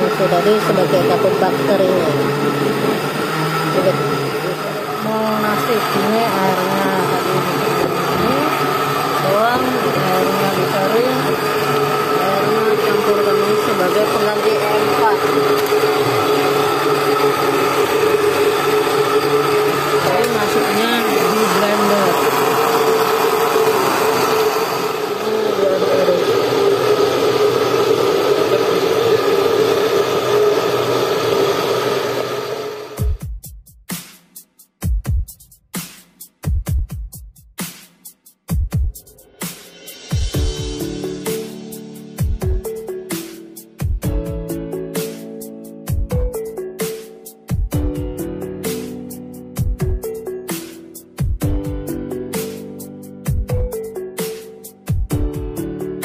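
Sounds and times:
small motor whirring: 0.4 - 33.1.

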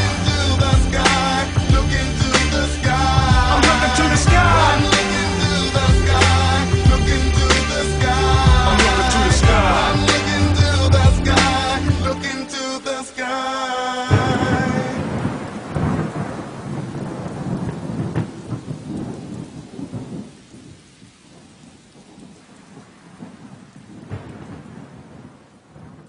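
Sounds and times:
thunder rumbling: 0.0 - 12.4, 14.1 - 26.0
steady rain hiss: 0.0 - 26.0.

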